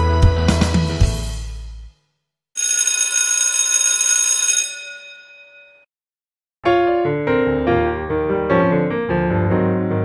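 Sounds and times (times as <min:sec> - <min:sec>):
ringing bell-like chime: 0:02.6 - 0:05.9.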